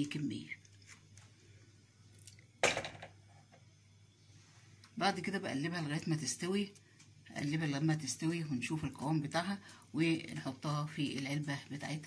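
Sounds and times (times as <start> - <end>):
faint low hum: 0.0 - 12.0
kitchenware clattering: 2.6 - 3.2.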